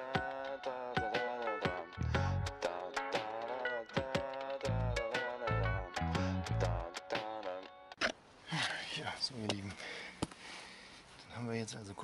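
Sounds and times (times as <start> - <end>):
song with singing: 0.0 - 7.9
man's voice: 11.3 - 12.0.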